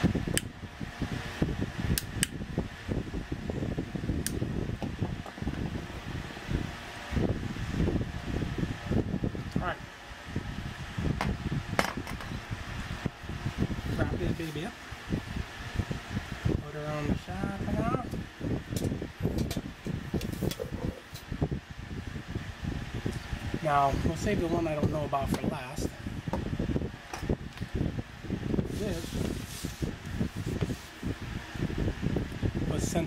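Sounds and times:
wind buffeting microphone: 0.0 - 33.0
cardboard boxes rustling and scraping: 28.8 - 31.0.

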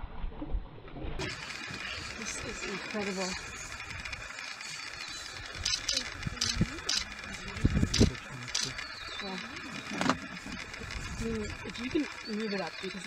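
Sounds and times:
hushed voices murmuring: 5.7 - 10.0.

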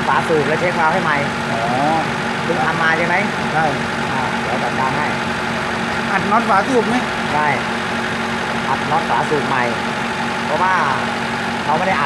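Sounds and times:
man talking: 0.0 - 5.2, 6.0 - 7.6, 8.7 - 9.8, 10.5 - 12.0
car engine idling: 0.0 - 12.0.

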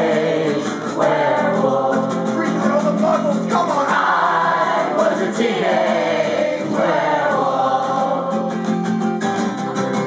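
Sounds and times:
people singing together: 0.0 - 9.2
acoustic guitar: 0.0 - 10.0.

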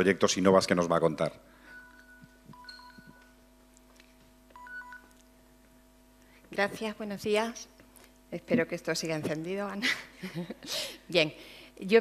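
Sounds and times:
low electrical hum: 0.0 - 12.0
short electronic beeps: 1.7 - 3.4, 4.6 - 5.1.

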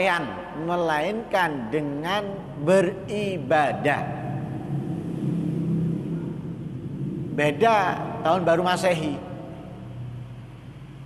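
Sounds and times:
faint hum: 0.0 - 11.0
steady low rumble: 0.0 - 11.0.

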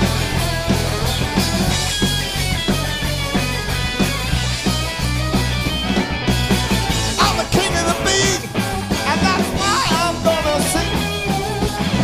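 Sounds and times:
garage rock band playing: 0.0 - 12.0.

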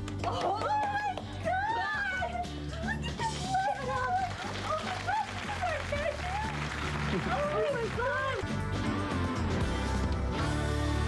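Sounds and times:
background music: 0.0 - 11.0
women squealing excitedly: 0.3 - 2.4.

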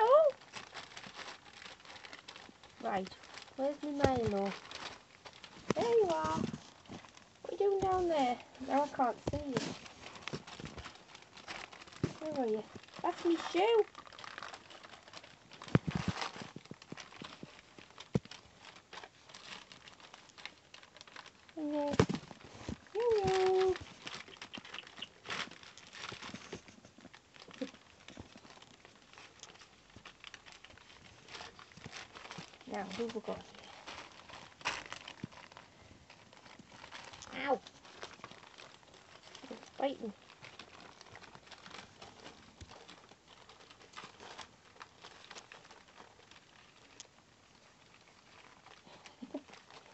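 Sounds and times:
puppies scrambling on blankets: 0.0 - 49.9.

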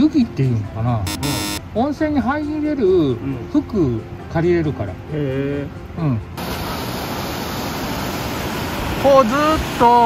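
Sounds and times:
river rushing over rapids: 6.4 - 10.0.

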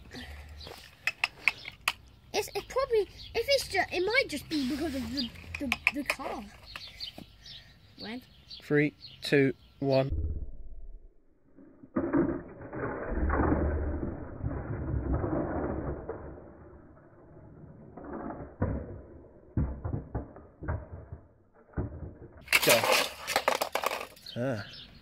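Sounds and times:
toy cars clacking: 0.8 - 7.1, 21.8 - 24.4.

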